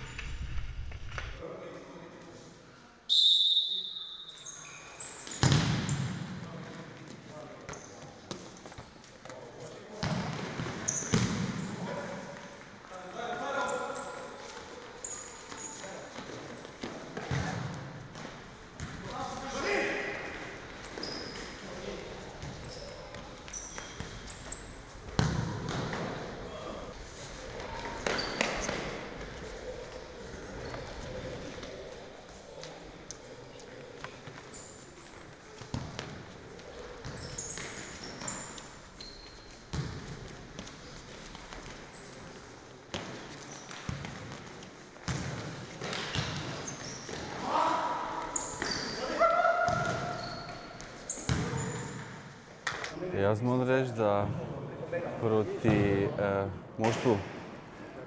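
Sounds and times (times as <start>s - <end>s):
referee's whistle blast: 3.1s - 4.4s.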